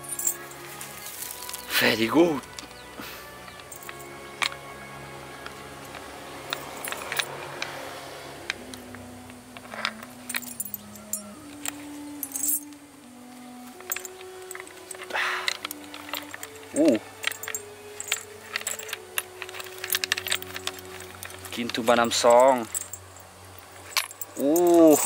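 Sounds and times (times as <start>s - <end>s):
metal chain clinking: 0.0s - 25.0s
soft music of held notes: 0.0s - 25.0s.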